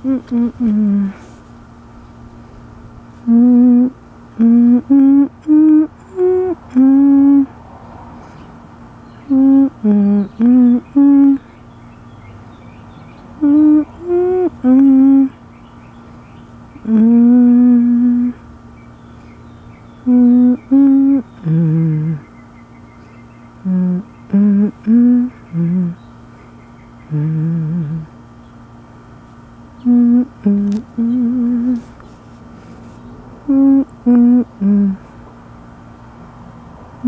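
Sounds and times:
person humming a slow tune: 0.0s - 1.4s, 3.2s - 7.6s, 9.3s - 11.6s, 13.4s - 15.4s, 16.8s - 18.5s, 20.0s - 22.3s, 23.6s - 26.1s, 27.0s - 28.3s, 29.8s - 32.0s, 33.4s - 35.2s.

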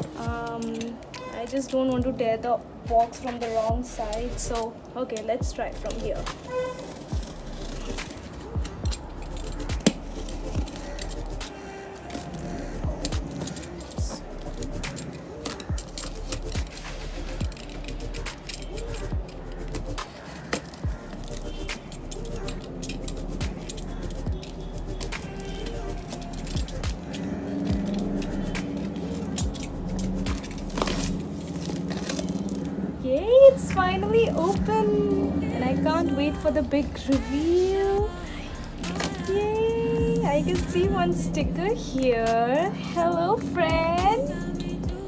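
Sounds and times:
background music: 0.0s - 45.0s
utility knife cutting tape and cardboard: 3.2s - 32.8s, 33.8s - 42.7s.

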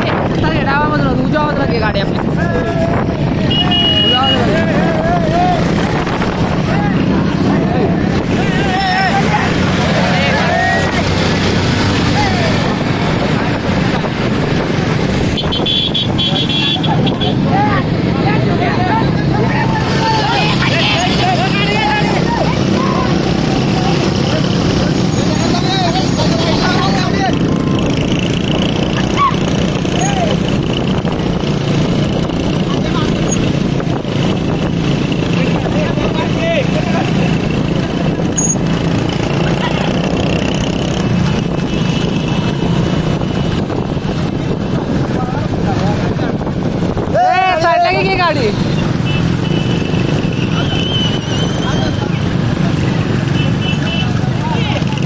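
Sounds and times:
wind buffeting microphone: 0.0s - 3.5s, 4.4s - 10.0s, 10.8s - 19.8s, 26.8s - 53.2s
motorcycle engines running: 0.0s - 55.0s
people shouting and whooping: 4.4s - 5.8s, 8.3s - 11.0s, 47.0s - 48.2s.

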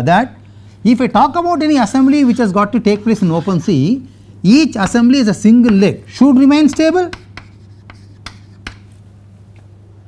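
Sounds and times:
chalk scratching on chalkboard: 2.0s - 3.8s, 6.5s - 8.9s
chalk tapping on chalkboard: 4.8s - 9.0s.

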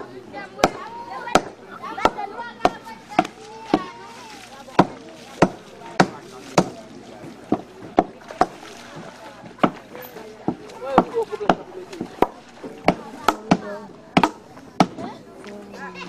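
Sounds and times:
chopping blows on wood: 0.6s - 3.9s, 4.8s - 6.8s, 10.5s - 15.0s.

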